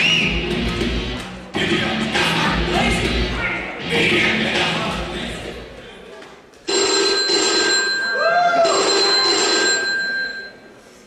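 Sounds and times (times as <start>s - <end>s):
phone ringtone: 6.7s - 10.8s.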